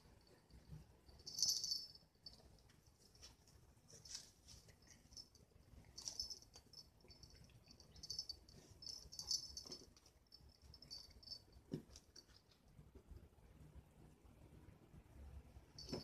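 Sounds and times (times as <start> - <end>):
plush toy rustling and crackling: 2.6 - 6.6.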